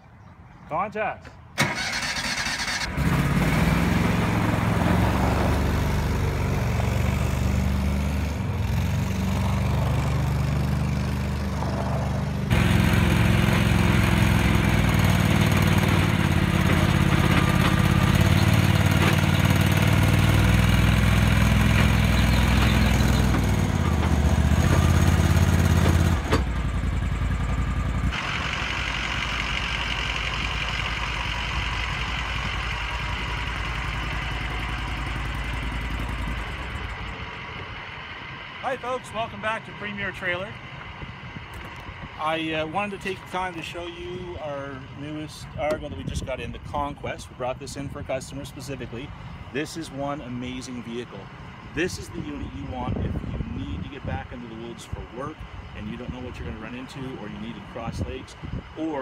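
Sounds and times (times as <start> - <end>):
engine hiss: 1.6 - 4.7, 12.2 - 45.2
vehicle engine running: 2.4 - 59.0.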